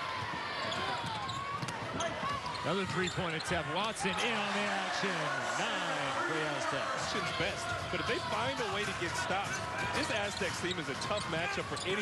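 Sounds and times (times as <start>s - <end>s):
arena crowd noise: 0.0s - 12.0s.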